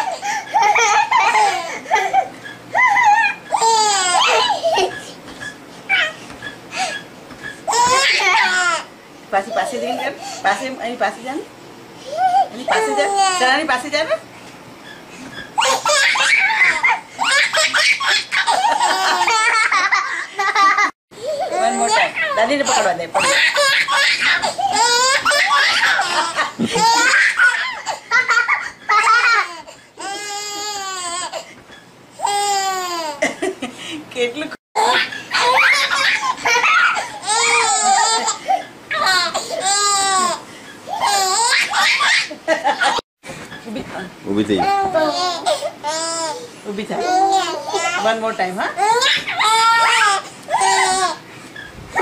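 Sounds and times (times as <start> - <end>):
baby laughing: 0.0 - 6.2, 7.7 - 8.9, 15.6 - 31.5, 34.8 - 43.0, 44.5 - 48.1, 48.8 - 51.2.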